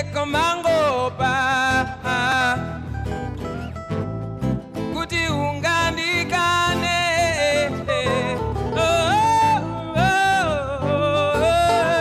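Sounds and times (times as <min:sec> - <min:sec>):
man singing: 0:00.0 - 0:03.4, 0:04.8 - 0:12.0
guitar accompaniment: 0:00.0 - 0:12.0.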